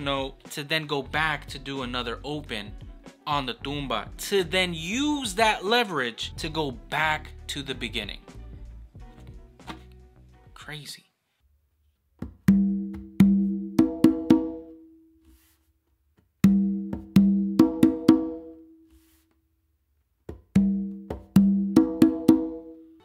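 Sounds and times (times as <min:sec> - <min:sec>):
congas played by hand: 0:12.5 - 0:14.8, 0:16.4 - 0:18.6, 0:20.5 - 0:22.8.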